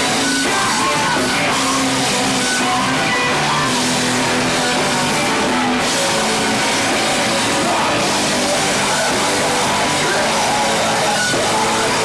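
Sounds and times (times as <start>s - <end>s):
distorted electric guitar: 0.0s - 12.0s
live band playing heavy rock: 0.0s - 12.0s.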